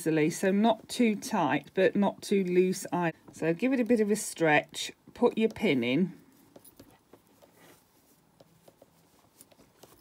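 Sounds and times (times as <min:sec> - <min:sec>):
fabric rustling: 0:05.6 - 0:10.0.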